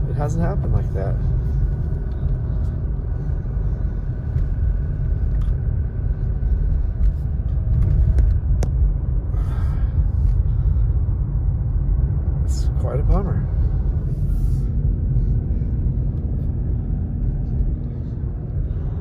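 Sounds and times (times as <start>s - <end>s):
car road and engine noise: 0.0s - 19.0s.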